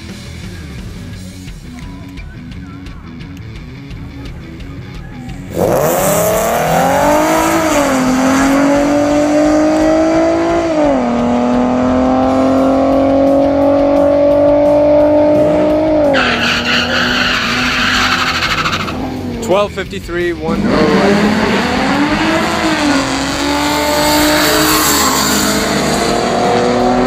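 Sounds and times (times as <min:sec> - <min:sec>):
car engine revving at full throttle: 0:05.2 - 0:19.7, 0:20.3 - 0:27.0.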